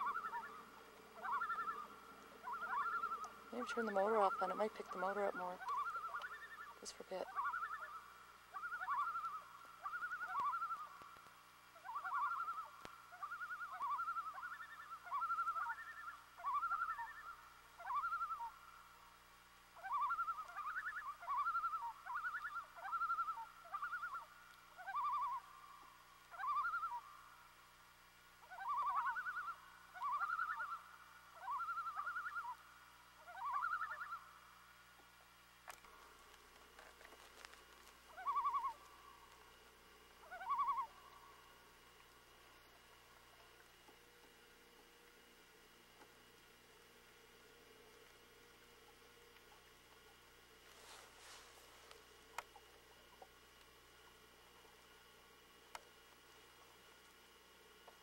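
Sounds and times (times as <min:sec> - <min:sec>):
birds alarm calls: 0:00.0 - 0:11.1, 0:11.8 - 0:18.6, 0:33.2 - 0:34.3, 0:37.2 - 0:38.9, 0:40.2 - 0:41.0.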